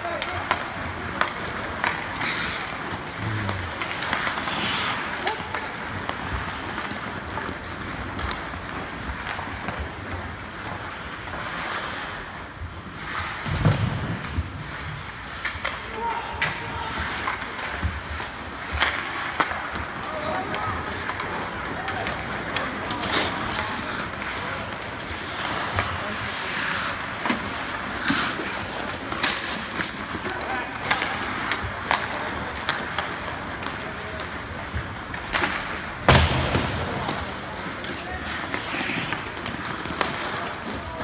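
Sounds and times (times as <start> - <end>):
hockey sticks and puck clicking: 0.0 - 41.0
skate blades scraping on ice: 0.0 - 41.0.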